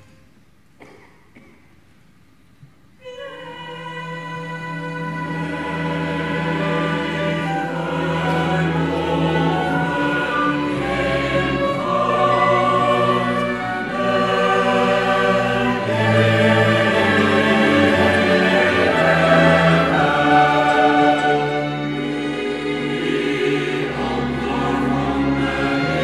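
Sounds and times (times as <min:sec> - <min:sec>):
mixed choir singing: 0:03.1 - 0:26.0
chamber orchestra playing: 0:04.0 - 0:26.0.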